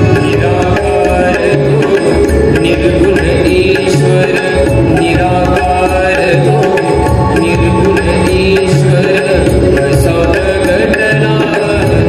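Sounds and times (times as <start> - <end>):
tabla beat: 0.0 - 12.0.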